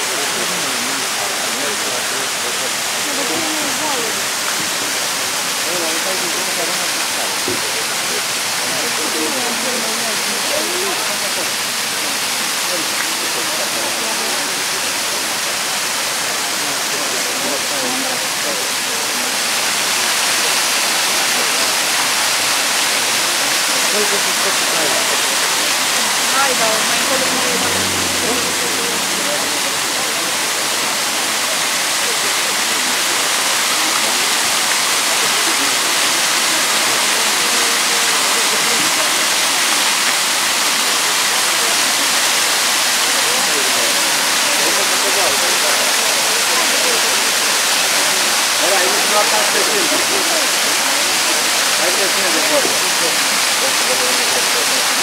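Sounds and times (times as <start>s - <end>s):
waterfall splashing into pool: 0.0s - 55.0s.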